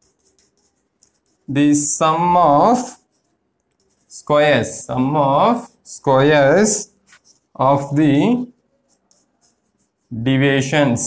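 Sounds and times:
chalk scratching on blackboard: 0:00.0 - 0:11.0.

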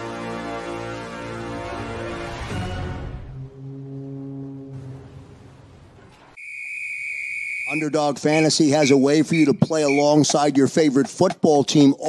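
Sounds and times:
low horn-like tone: 0:03.3 - 0:05.5
high whistle-like tone with hiss: 0:06.4 - 0:10.2
man's voiceover: 0:07.7 - 0:12.0.

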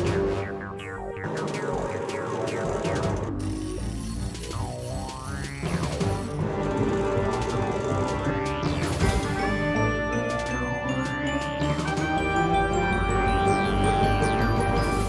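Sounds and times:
swooping sound effect: 0:00.0 - 0:03.4
dramatic cartoon music: 0:00.0 - 0:15.0.

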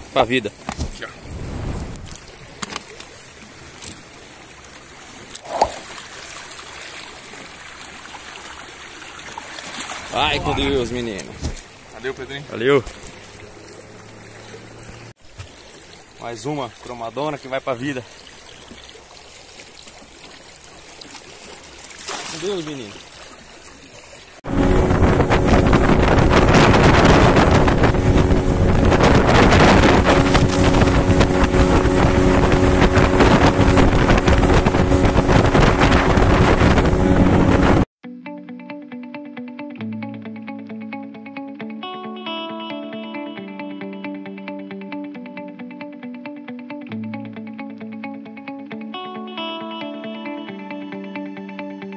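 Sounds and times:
wind and water noise: 0:00.0 - 0:37.9
boat motor running: 0:12.6 - 0:15.1, 0:24.4 - 0:37.9.

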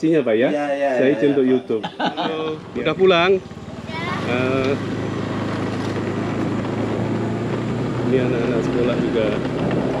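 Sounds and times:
road and air noise: 0:00.0 - 0:10.0
motorcycle engine running: 0:02.3 - 0:10.0.

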